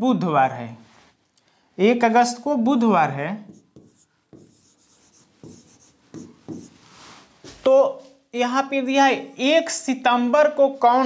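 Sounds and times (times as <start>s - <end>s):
pen writing on board: 3.5s - 6.8s.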